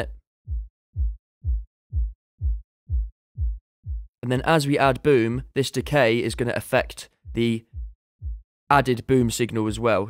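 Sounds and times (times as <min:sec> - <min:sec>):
deep kick drum thuds: 0:00.0 - 0:04.1, 0:07.3 - 0:08.5.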